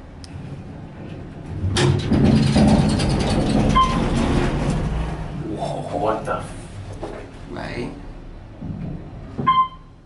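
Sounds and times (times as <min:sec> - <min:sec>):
elevator low rumble: 0:00.0 - 0:10.0
elevator clunk: 0:01.5 - 0:05.1.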